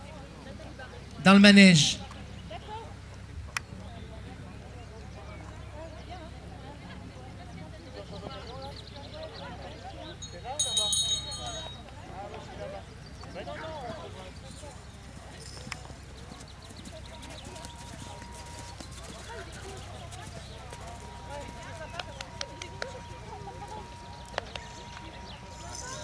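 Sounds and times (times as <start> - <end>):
distant voices: 0.0 - 26.0
horse hoofbeats on sand: 15.3 - 26.0.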